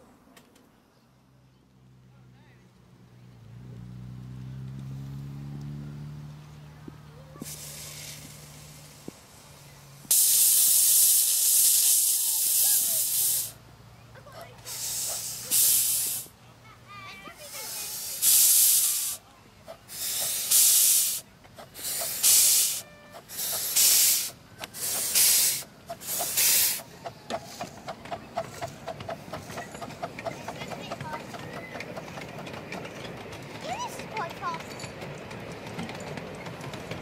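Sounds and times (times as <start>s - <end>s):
steam locomotive chuffing: 7.2s - 16.4s, 17.1s - 37.0s
steam hiss: 7.4s - 13.6s, 14.6s - 16.4s, 17.4s - 30.6s.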